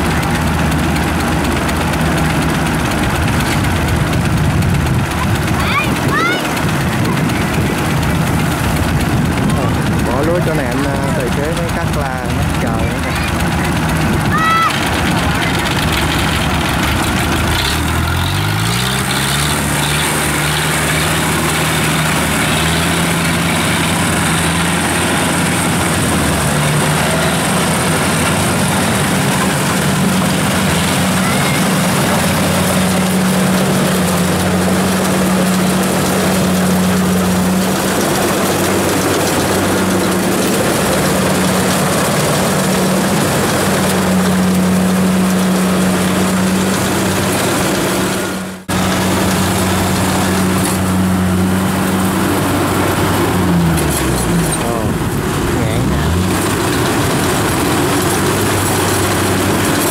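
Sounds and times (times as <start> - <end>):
combine harvester diesel engine: 0.0 - 59.9
small cart engine: 0.0 - 59.9.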